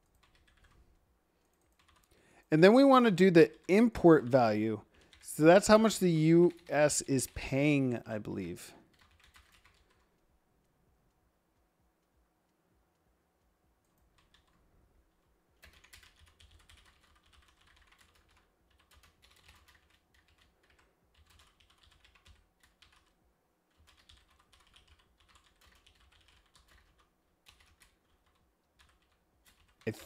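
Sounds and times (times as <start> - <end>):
faint keyboard typing: 0.0 - 30.0.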